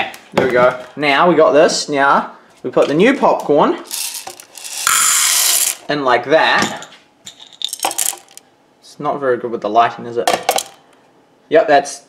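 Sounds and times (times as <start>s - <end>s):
popcorn kernels rattling into machine: 3.9s - 5.9s, 7.5s - 8.4s, 10.4s - 10.8s.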